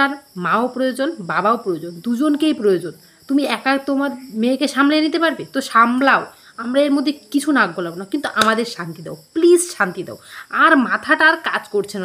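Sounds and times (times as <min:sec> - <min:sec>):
woman talking: 0:00.0 - 0:12.0.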